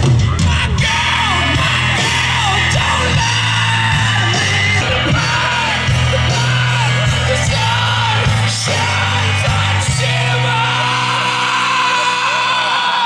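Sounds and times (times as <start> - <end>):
bass notes: 0.0 - 13.0
live rock band playing: 0.0 - 13.0
person singing or shouting: 0.2 - 13.0.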